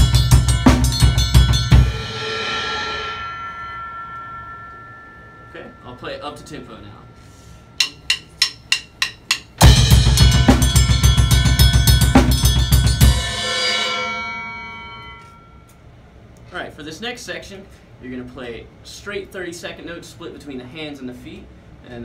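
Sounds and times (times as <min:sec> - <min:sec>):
drum kit playing fast: 0:00.0 - 0:03.2, 0:07.8 - 0:14.4
ride cymbal ringing: 0:00.0 - 0:16.2.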